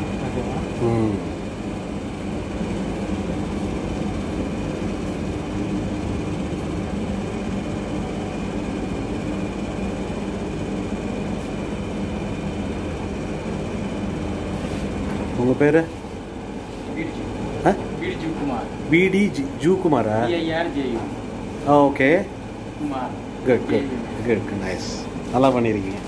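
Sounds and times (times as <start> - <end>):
machine hum and rumble: 0.0 - 26.0.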